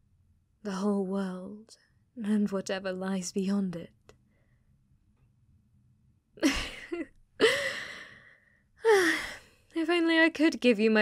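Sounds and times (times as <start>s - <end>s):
woman gasping breathily: 7.4s - 9.5s.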